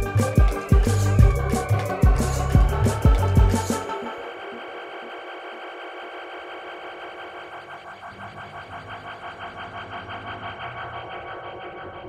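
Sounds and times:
low bass: 0.0s - 3.8s
pulsing synthesizer loop: 0.0s - 12.0s.

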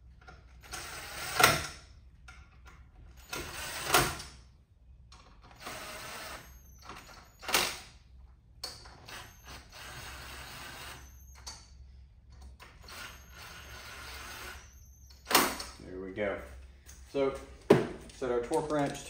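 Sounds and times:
cordless drill driving bolts: 3.2s - 4.3s, 5.5s - 7.7s, 8.9s - 11.0s, 12.6s - 15.7s.

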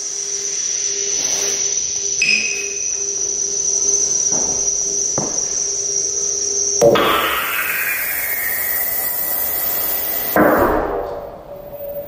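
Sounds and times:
high whistle-like synth tone: 0.0s - 10.4s, 11.3s - 12.0s
low drone and hiss: 0.0s - 12.0s.

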